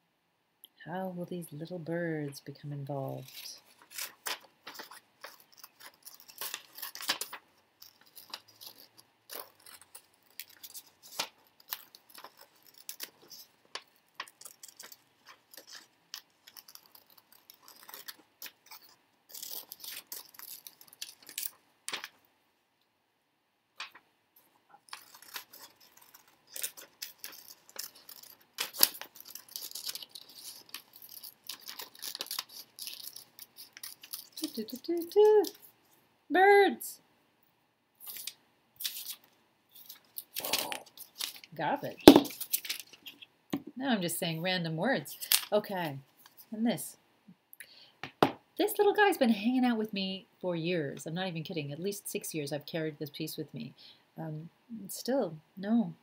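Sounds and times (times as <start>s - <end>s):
paper rustling and crinkling: 3.2s - 22.2s, 24.8s - 35.8s, 38.0s - 43.3s.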